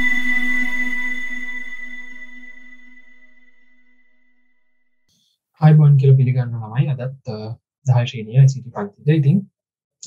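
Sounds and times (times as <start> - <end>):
intro music held chord: 0.0 - 3.6.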